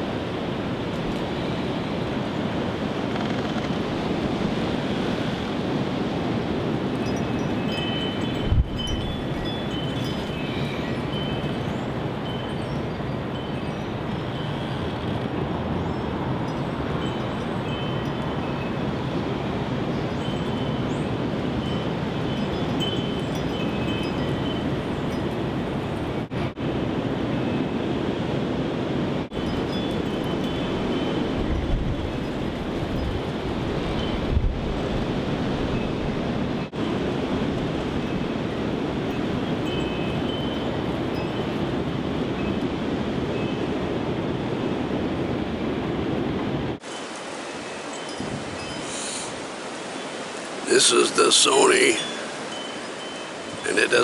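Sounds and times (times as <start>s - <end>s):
strong wind rushing through trees: 0.0s - 54.0s.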